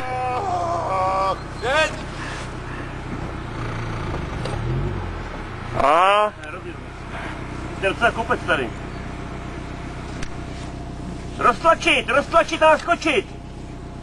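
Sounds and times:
loud whoop: 0:00.0 - 0:01.9
people shouting and cheering: 0:00.0 - 0:02.0
steady low hum: 0:00.0 - 0:14.0.

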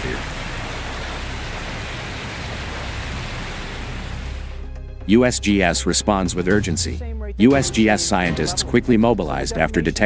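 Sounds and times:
geyser hissing steam and spray: 0:00.0 - 0:04.5.

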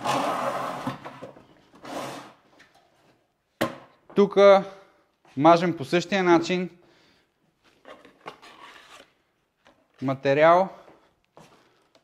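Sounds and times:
board scraping across table: 0:00.0 - 0:02.4, 0:08.4 - 0:09.1.

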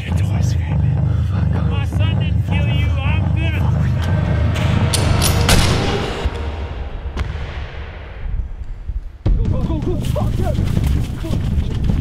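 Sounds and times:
running footsteps on grass: 0:09.4 - 0:12.0.

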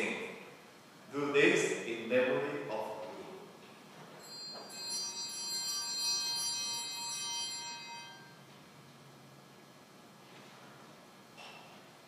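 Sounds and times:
small bells ringing together: 0:04.2 - 0:08.4.

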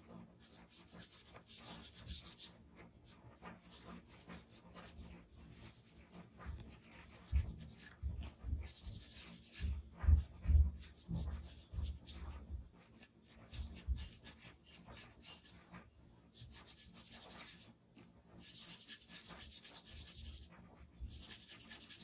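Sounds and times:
scratchy charcoal rubbing on paper: 0:00.4 - 0:02.5, 0:03.5 - 0:08.0, 0:08.6 - 0:09.7, 0:10.8 - 0:12.2, 0:12.9 - 0:15.7, 0:16.3 - 0:17.7, 0:18.4 - 0:22.0
soft low thumps: 0:06.5 - 0:12.7.

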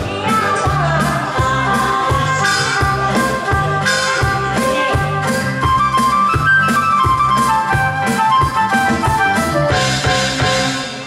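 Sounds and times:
bass: 0:00.0 - 0:11.0
drum kit beat: 0:00.0 - 0:11.0
flute-like lead melody: 0:02.4 - 0:11.0.

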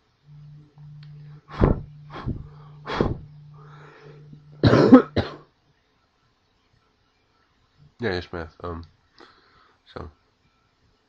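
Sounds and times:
man coughing: 0:04.6 - 0:05.4.

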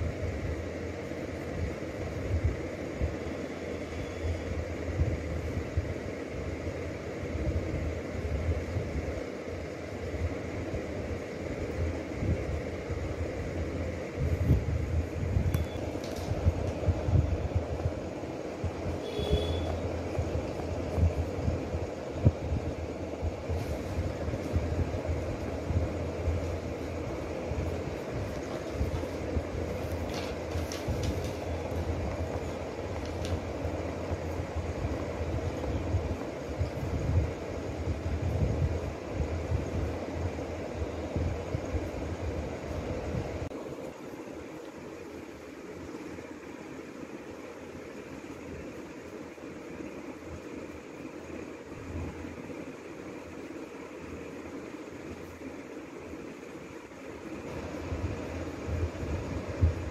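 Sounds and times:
low rumbling background noise: 0:00.0 - 0:59.9.

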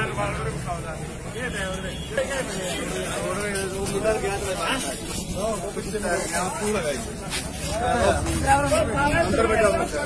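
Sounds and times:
men talking in a crowd: 0:00.0 - 0:10.0.

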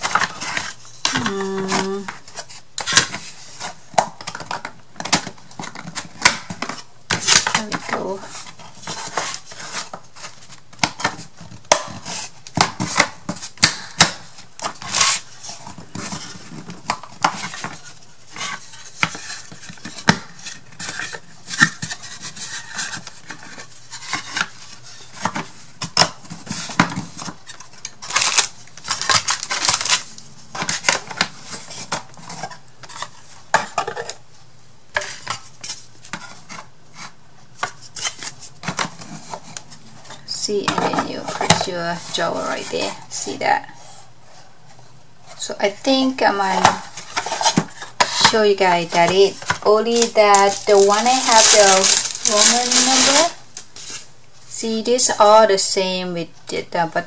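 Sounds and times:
wooden parts scraping and sliding: 0:46.4 - 0:54.1.

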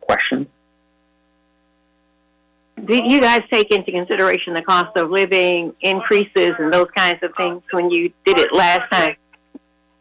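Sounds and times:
faint electrical hum: 0:00.0 - 0:10.0
person speaking: 0:02.8 - 0:09.6.

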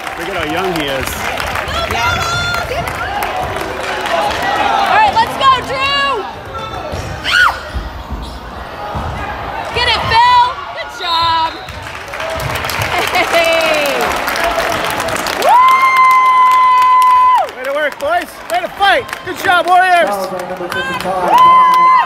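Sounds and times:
crowd noise: 0:00.0 - 0:22.0
basketball bouncing: 0:06.4 - 0:13.0
sneaker squeaks: 0:06.6 - 0:08.7.

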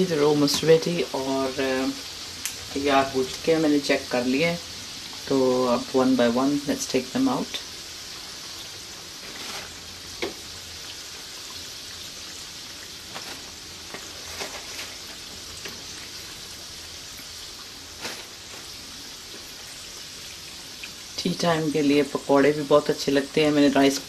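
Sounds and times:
chicken deep-frying in oil: 0:00.0 - 0:24.0
oil popping: 0:08.2 - 0:21.2.

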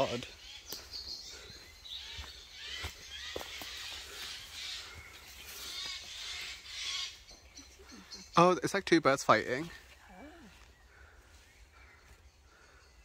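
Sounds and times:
harsh raspy bird calls: 0:00.0 - 0:13.0.

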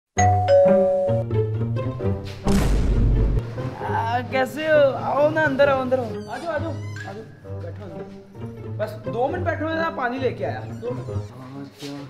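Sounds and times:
doorbell ding-dong chime: 0:00.2 - 0:01.2
music: 0:00.2 - 0:12.0.

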